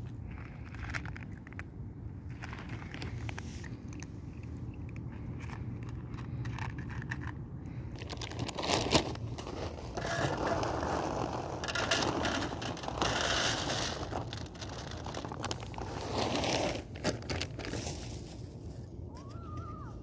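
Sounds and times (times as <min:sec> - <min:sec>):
cats chewing dry kibble: 0:00.0 - 0:19.0.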